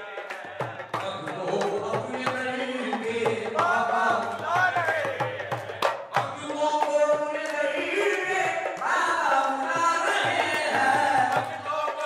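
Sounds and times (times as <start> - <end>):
man chanting through microphone: 0.0 - 12.0
rhythmic hand clapping: 0.0 - 12.0.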